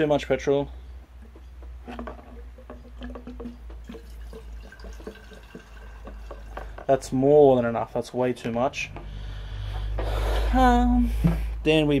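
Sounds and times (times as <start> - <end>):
liquid pouring into glass jar: 2.3 - 7.0.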